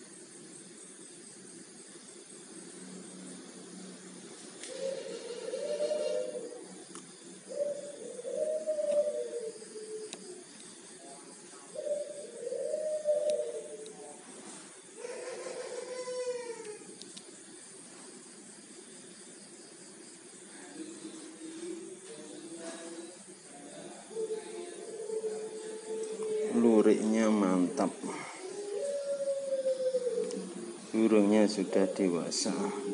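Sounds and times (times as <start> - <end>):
dove cooing: 4.5 - 10.6, 11.5 - 17.0, 20.6 - 32.9.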